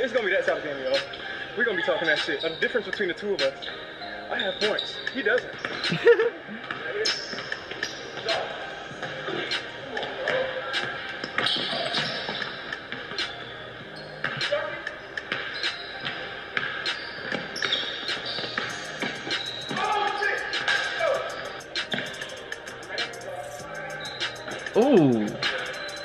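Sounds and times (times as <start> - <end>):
background music: 0.0 - 26.0
faint voices: 19.8 - 26.0.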